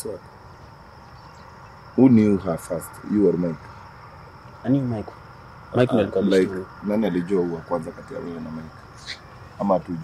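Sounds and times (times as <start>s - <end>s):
steady high-pitched whine: 0.0s - 10.0s
person's voice: 2.0s - 3.6s, 5.8s - 10.0s.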